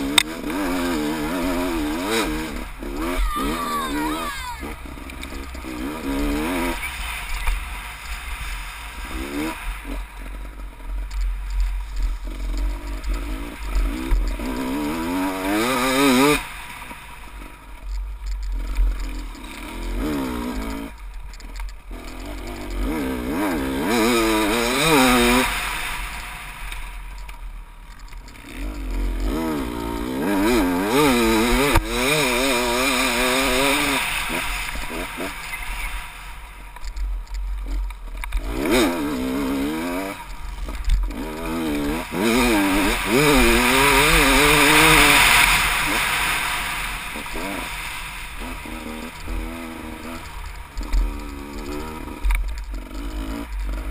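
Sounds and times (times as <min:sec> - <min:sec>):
dirt bike engine revving: 0:00.0 - 0:27.2, 0:27.9 - 0:53.9.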